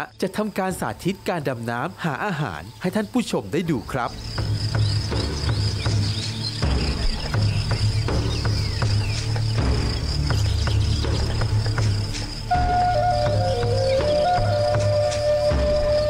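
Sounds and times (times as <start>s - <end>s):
insects chirring: 0.0s - 16.0s
low droning music: 0.0s - 16.0s.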